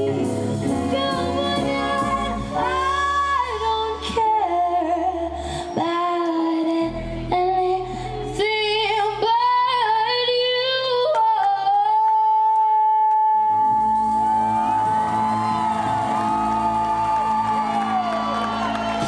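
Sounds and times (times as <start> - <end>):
woman singing: 0.0 - 14.0.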